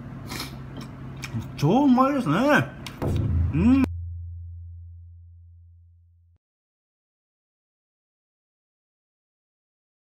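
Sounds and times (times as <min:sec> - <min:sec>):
deep low tone: 0:03.0 - 0:06.4.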